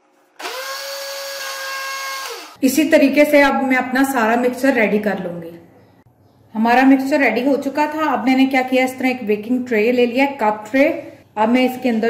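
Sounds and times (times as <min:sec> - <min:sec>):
blender motor whining: 0:00.0 - 0:02.6.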